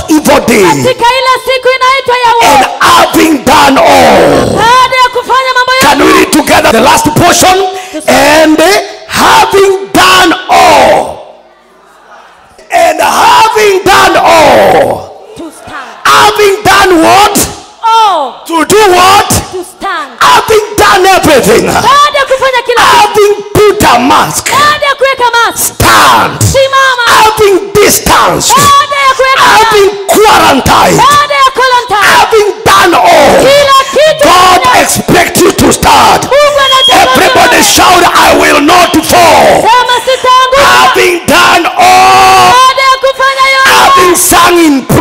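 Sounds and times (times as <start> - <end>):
congregation reading aloud in unison: 0.0 - 45.0.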